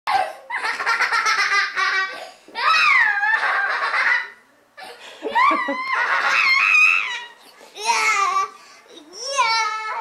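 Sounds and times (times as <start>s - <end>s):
high-pitched laughter: 0.2s - 4.4s, 5.1s - 7.4s
long squealing laugh: 2.0s - 4.4s, 5.2s - 7.4s.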